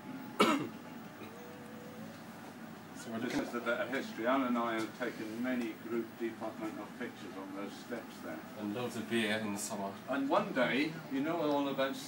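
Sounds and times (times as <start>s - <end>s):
person coughing: 0.4s - 0.7s.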